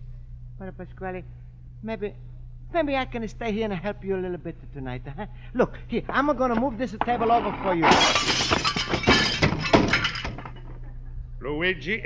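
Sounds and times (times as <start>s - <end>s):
glass breaking crash: 7.4s - 10.6s.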